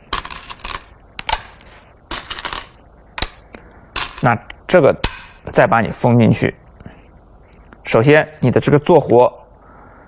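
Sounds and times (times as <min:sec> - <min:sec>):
stones rattling in a bowl: 0:00.0 - 0:00.9.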